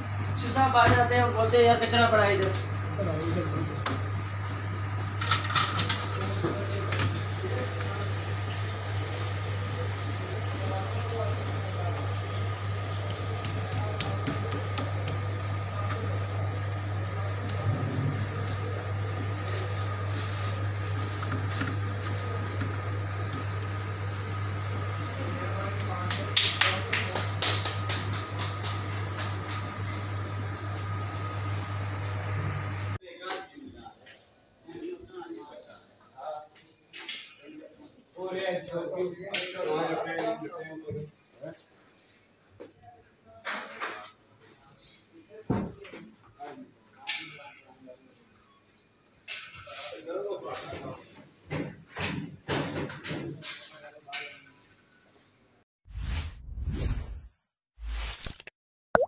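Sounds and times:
low machine hum: 0:00.0 - 0:33.0.

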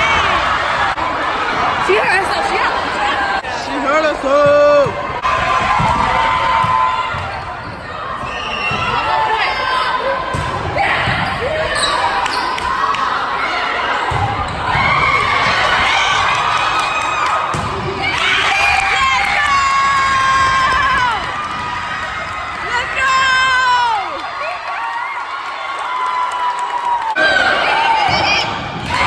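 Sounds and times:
crowd cheering: 0:00.0 - 0:29.0
players and spectators shouting: 0:00.0 - 0:29.0.

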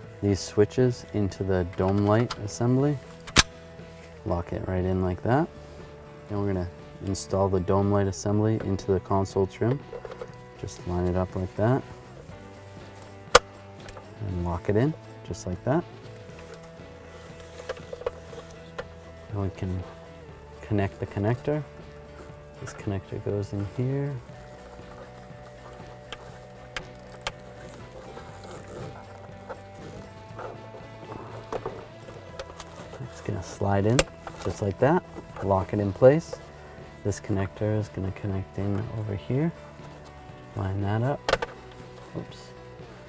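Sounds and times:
soft background music: 0:00.0 - 0:43.0.

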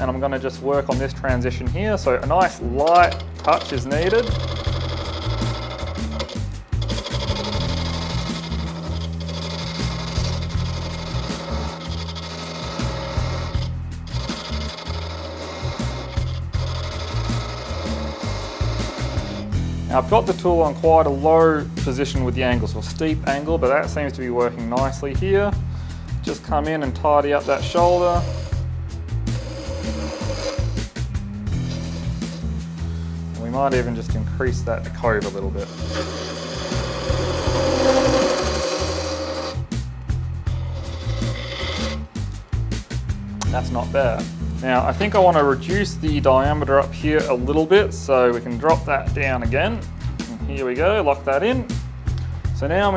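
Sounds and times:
background music with bass line: 0:00.0 - 0:52.9
gouge scraping wood on lathe: 0:01.9 - 0:25.0, 0:26.2 - 0:42.9, 0:43.5 - 0:47.4.

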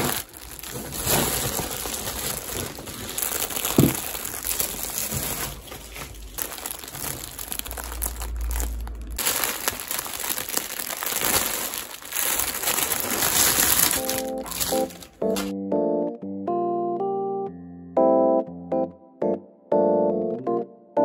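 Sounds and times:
plastic packaging crinkling: 0:00.0 - 0:15.5.

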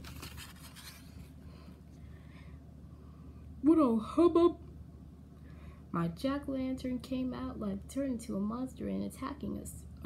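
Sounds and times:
paper pages turning: 0:00.0 - 0:01.3.

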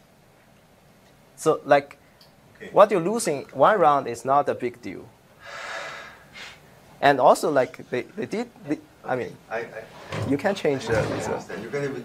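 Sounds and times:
person breathing: 0:05.4 - 0:06.7.

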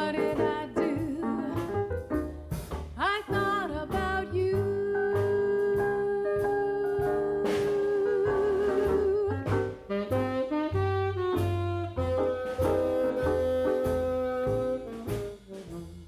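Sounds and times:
band accompaniment: 0:00.0 - 0:16.0
bass line: 0:00.0 - 0:16.0
tenor saxophone jazz melody: 0:00.0 - 0:16.0.

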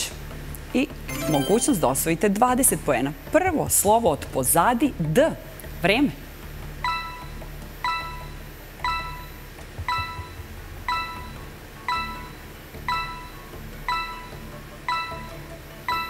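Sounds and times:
electronic countdown chime: 0:01.1 - 0:02.2, 0:06.8 - 0:16.0.

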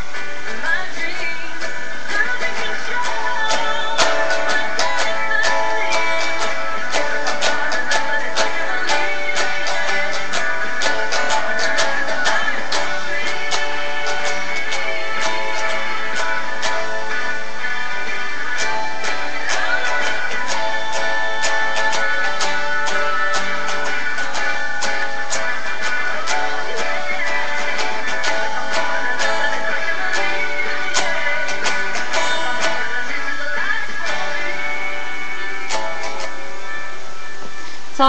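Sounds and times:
guitar strumming chords: 0:00.0 - 0:38.0.

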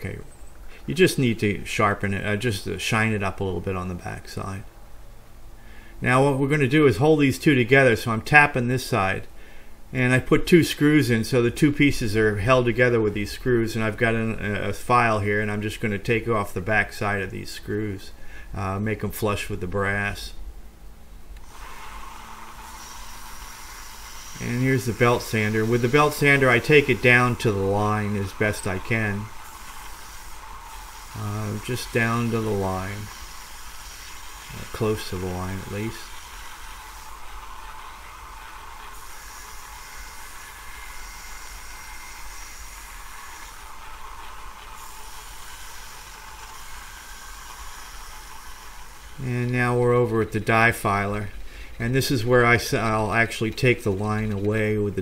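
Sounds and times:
belt sander grinding brass: 0:21.4 - 0:55.0.

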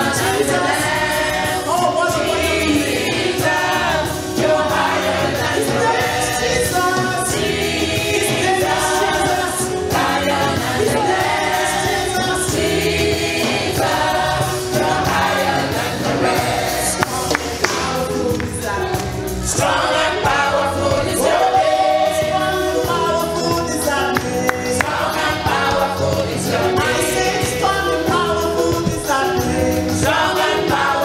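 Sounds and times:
congregation singing along: 0:00.0 - 0:31.0
musical accompaniment: 0:00.0 - 0:31.0
women backing singers: 0:00.0 - 0:31.0.

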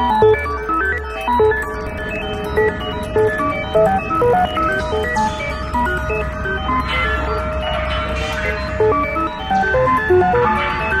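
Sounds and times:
electronic music melody: 0:00.0 - 0:11.0.

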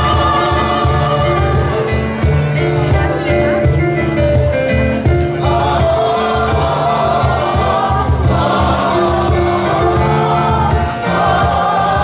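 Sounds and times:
mixed choir singing: 0:00.0 - 0:03.7, 0:05.0 - 0:12.0
piano accompaniment: 0:00.0 - 0:12.0.

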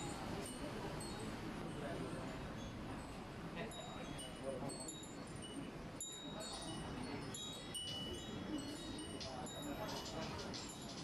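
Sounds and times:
murmur of background chatter: 0:00.0 - 0:11.0
wind chimes tinkling: 0:00.0 - 0:11.0.

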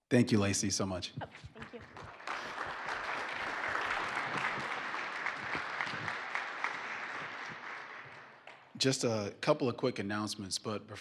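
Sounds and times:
audience applauding: 0:01.4 - 0:09.0.

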